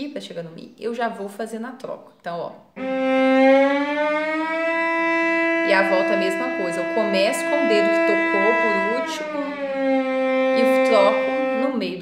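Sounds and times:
bowed cello glissando: 0:02.8 - 0:12.0.

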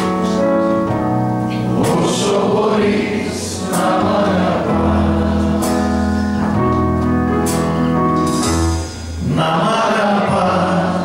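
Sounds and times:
instrumental accompaniment: 0:00.0 - 0:10.6
man singing into a microphone: 0:09.2 - 0:11.0.

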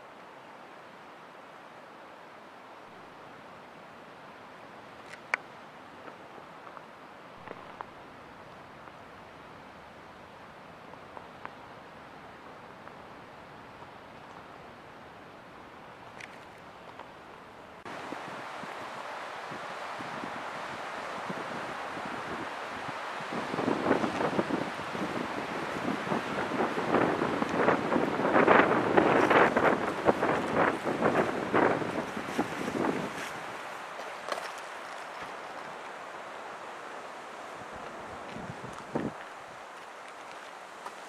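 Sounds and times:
wind buffeting microphone: 0:17.9 - 0:33.8, 0:37.5 - 0:39.8.

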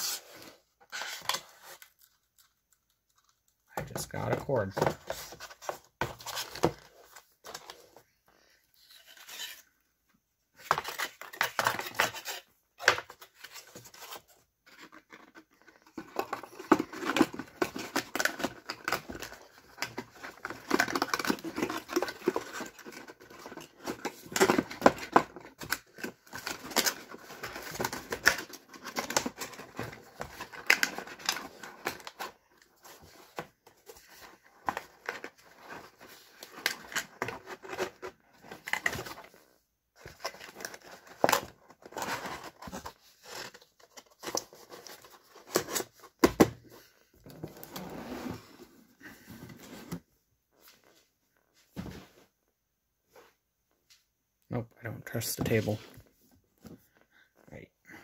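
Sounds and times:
cardboard scraping and rustling: 0:10.6 - 0:52.3.

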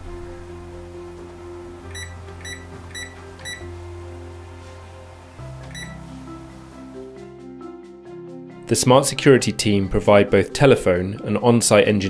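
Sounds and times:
soft background music: 0:00.0 - 0:12.0
alarm keypad beeps: 0:01.9 - 0:03.7, 0:05.7 - 0:06.0.

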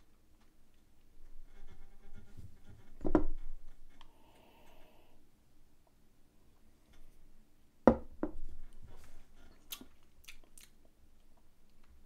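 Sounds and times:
lip smacks and mouth clicks: 0:09.6 - 0:12.0.

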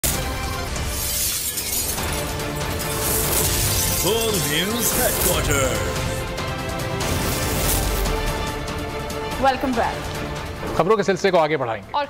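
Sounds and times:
glass shattering effect: 0:00.0 - 0:06.2, 0:07.0 - 0:08.3
dramatic music: 0:00.0 - 0:12.0.

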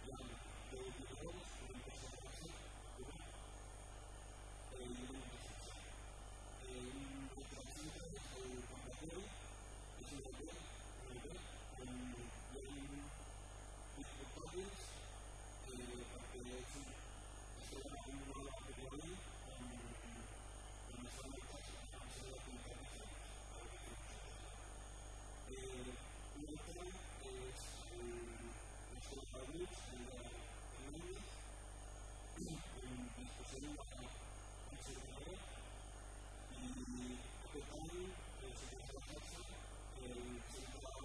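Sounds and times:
man talking: 0:00.0 - 0:03.4, 0:04.7 - 0:06.0, 0:06.6 - 0:13.2, 0:13.9 - 0:17.0, 0:17.6 - 0:24.6, 0:25.4 - 0:31.5, 0:32.3 - 0:35.7, 0:36.5 - 0:41.0
electrical mains hum: 0:00.0 - 0:41.0.

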